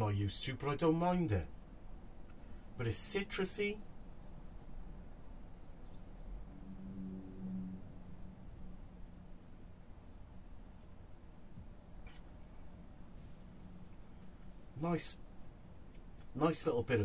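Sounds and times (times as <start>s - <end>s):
faint low hum: 0.0s - 17.0s.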